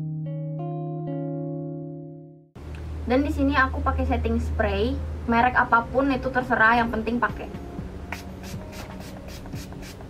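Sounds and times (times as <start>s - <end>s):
pump spray bottle hissing: 8.1s - 10.0s.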